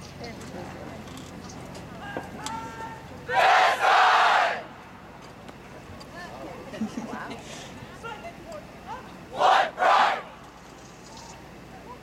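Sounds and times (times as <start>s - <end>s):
faint crowd murmur: 0.0s - 12.0s
crowd shouting together: 2.5s - 4.8s, 9.3s - 10.4s.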